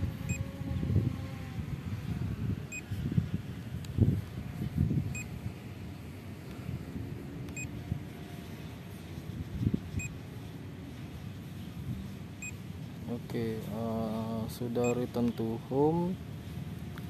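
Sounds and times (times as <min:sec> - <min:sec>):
low wind rumble: 0:00.0 - 0:17.0.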